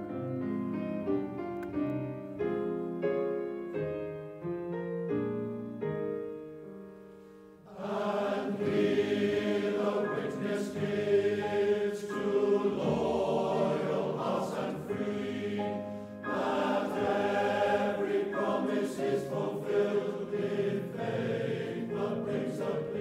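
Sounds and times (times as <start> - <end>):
choir singing: 7.7 - 23.0.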